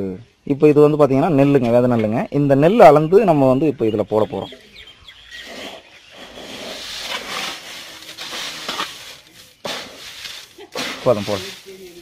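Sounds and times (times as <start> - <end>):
dry seed rustling in metal basin: 6.6 - 12.0.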